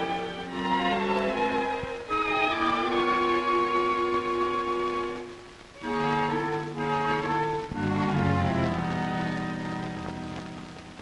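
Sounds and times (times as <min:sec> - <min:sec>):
string section sustained chords: 0:00.0 - 0:11.0.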